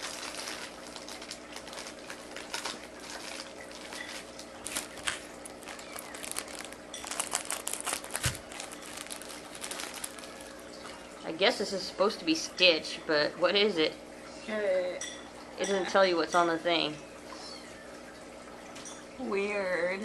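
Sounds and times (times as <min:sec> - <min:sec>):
plastic packaging crinkling: 0:00.0 - 0:11.1.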